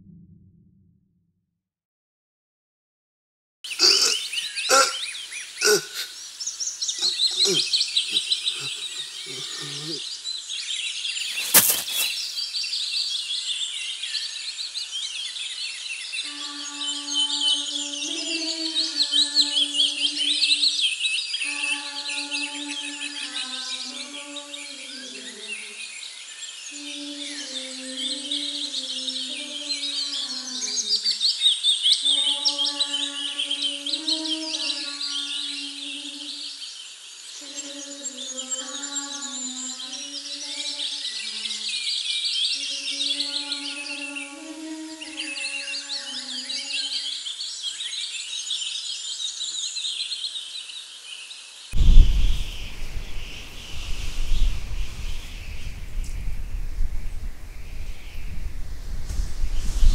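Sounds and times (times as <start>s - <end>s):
birds chirping: 3.7s - 48.0s, 51.8s - 59.9s.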